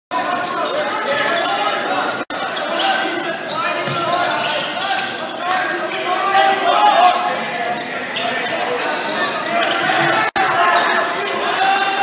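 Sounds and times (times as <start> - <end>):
echoing crowd chatter: 0.1 - 12.0.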